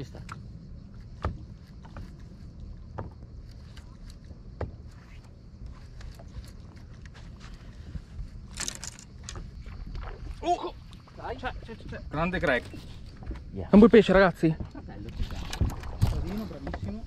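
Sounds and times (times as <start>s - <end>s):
boat engine rumble: 0.0s - 17.0s
fishing tackle clicks: 8.4s - 9.5s.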